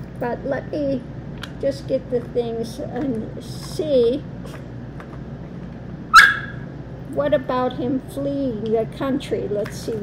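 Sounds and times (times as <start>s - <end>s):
dog squeaking: 6.1s - 6.6s.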